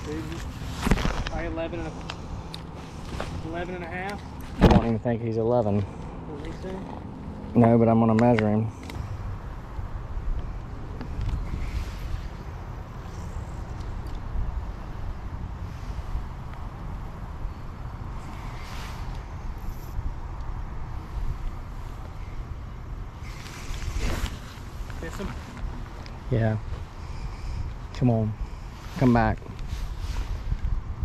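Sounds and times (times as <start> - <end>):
wind buffeting microphone: 9.0 - 31.0
short hissing swishes: 18.1 - 20.0, 23.2 - 25.5.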